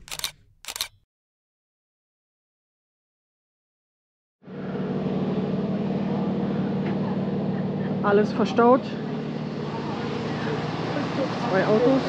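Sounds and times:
vehicle engine idling: 0:04.5 - 0:12.0.

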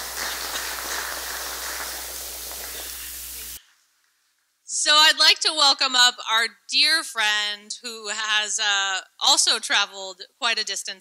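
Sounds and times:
microphone hiss and hum: 0:00.0 - 0:11.0.

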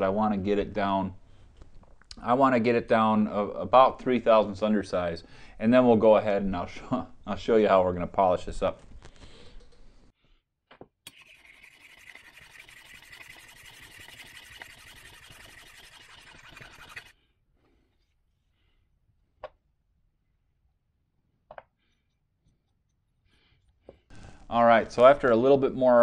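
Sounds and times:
metal rasping on a file: 0:11.1 - 0:17.2.

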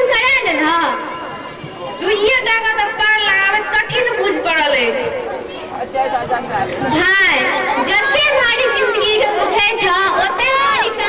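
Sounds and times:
background chatter: 0:00.0 - 0:11.0
people talking: 0:00.0 - 0:11.0.

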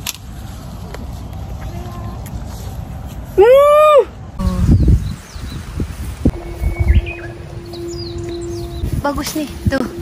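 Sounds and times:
rustling leaves: 0:00.0 - 0:10.0
steady low hum: 0:04.3 - 0:10.0.

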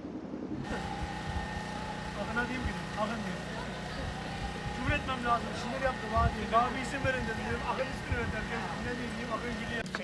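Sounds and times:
engine-like hum: 0:00.0 - 0:10.0
faint voices talking: 0:00.7 - 0:10.0.

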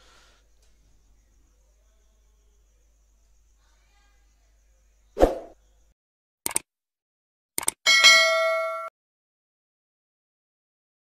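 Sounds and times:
notification bell ding: 0:07.9 - 0:08.9.

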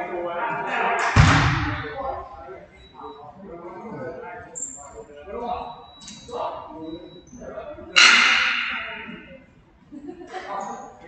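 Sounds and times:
sharp loud bang echoing: 0:01.0 - 0:02.2, 0:08.0 - 0:09.2.

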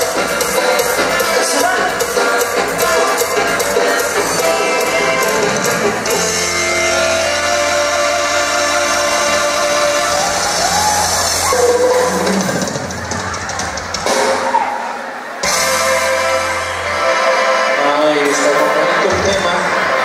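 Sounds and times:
drums: 0:00.0 - 0:20.0
guitar: 0:00.0 - 0:20.0
live dance band playing: 0:00.0 - 0:20.0.

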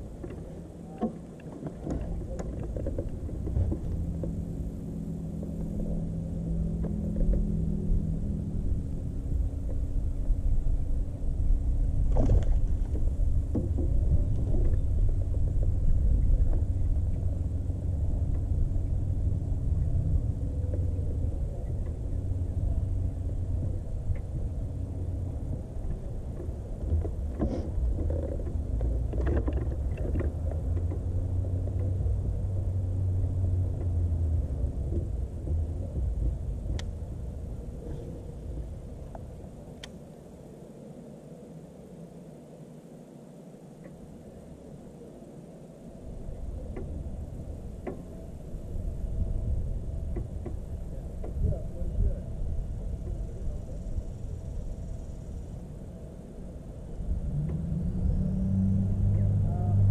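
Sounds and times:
electric trolling motor hum: 0:00.0 - 0:42.0, 0:43.6 - 0:59.9
wind rumble on microphone: 0:00.0 - 0:59.9.

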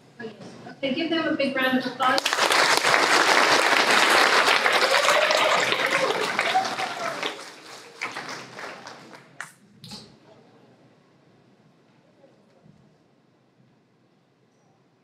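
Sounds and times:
audience applauding: 0:02.0 - 0:09.6.

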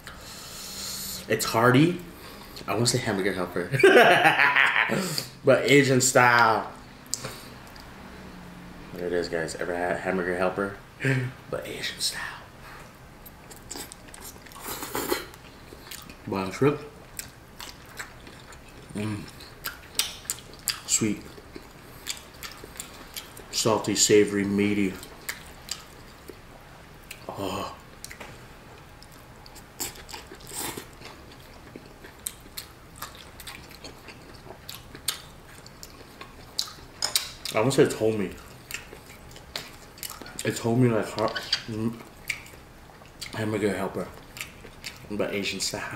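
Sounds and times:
person chewing noodles: 0:13.2 - 0:16.3, 0:17.0 - 0:23.6, 0:25.0 - 0:26.4, 0:27.0 - 0:37.6, 0:38.3 - 0:40.5, 0:44.1 - 0:45.1
person slurping and chewing noodles: 0:13.5 - 0:16.2.

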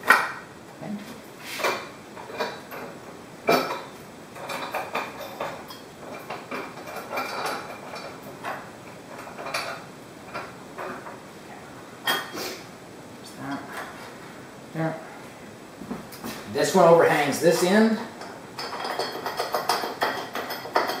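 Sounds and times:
metal bars clacking: 0:17.5 - 0:21.0.

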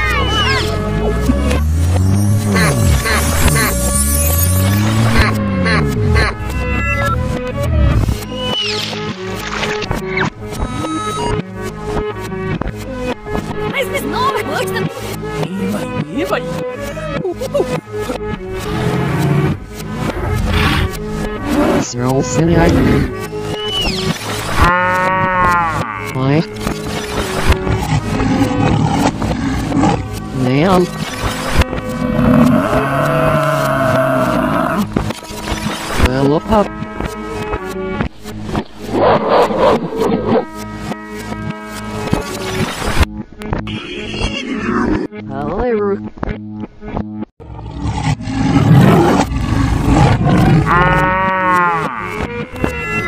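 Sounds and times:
light cartoon music: 0:00.0 - 0:47.3, 0:48.2 - 0:53.0
lion roar: 0:18.6 - 0:21.9, 0:27.5 - 0:30.2, 0:31.9 - 0:34.9, 0:38.8 - 0:40.5, 0:47.4 - 0:52.1
cow mooing: 0:24.6 - 0:26.4, 0:32.0 - 0:34.9, 0:47.4 - 0:52.2.

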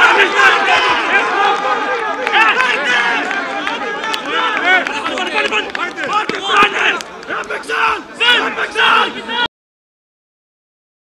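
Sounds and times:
men shouting: 0:00.0 - 0:09.5.

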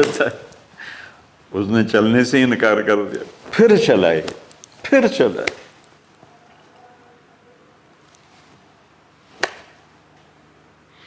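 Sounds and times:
sharp tap: 0:09.4 - 0:09.7.

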